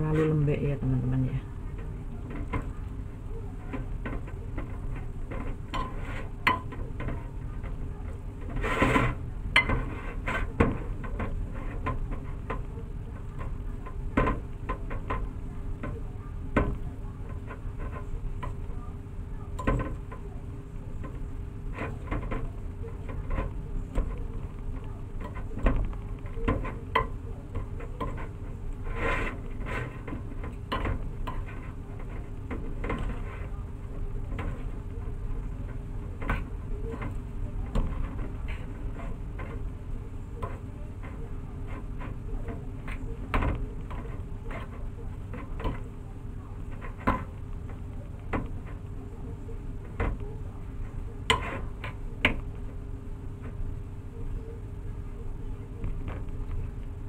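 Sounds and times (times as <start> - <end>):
fork scraping ceramic plate: 3.7 - 15.9, 25.2 - 33.6, 51.3 - 52.0.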